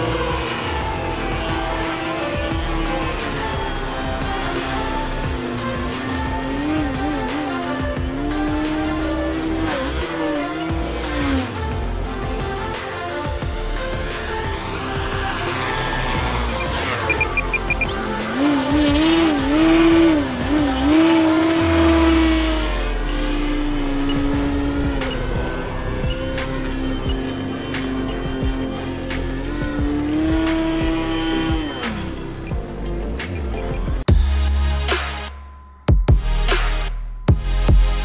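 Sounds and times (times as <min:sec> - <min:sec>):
electronic music: 0:00.0 - 0:38.0.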